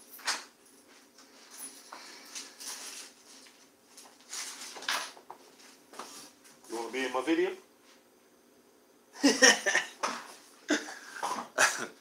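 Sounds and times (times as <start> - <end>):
man laughing: 9.2 - 10.1, 10.7 - 12.0.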